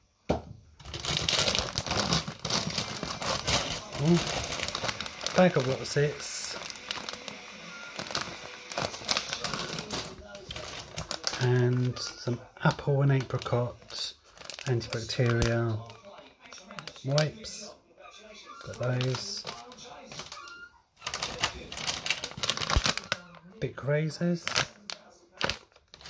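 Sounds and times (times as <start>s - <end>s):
plastic crisp packet crinkling: 0.8s - 17.8s, 18.5s - 26.0s.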